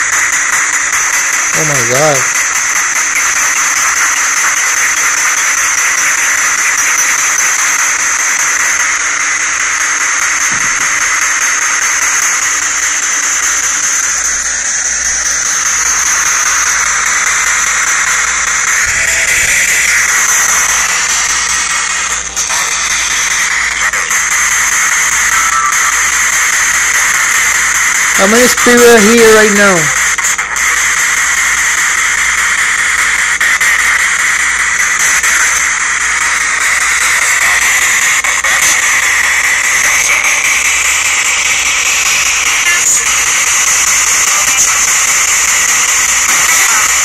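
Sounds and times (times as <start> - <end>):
fragments of radio broadcast: 0.0 - 47.0
radio static hiss: 0.0 - 47.0.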